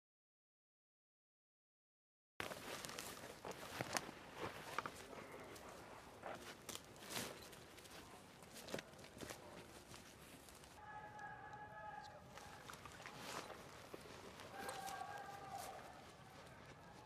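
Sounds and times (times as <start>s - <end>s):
boots scuffing through vegetation: 2.4s - 10.8s, 12.4s - 17.0s
twigs crackling: 2.4s - 17.0s.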